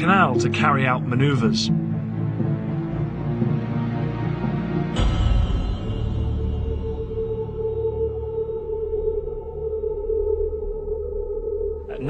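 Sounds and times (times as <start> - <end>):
tense background music drone: 0.0 - 12.0.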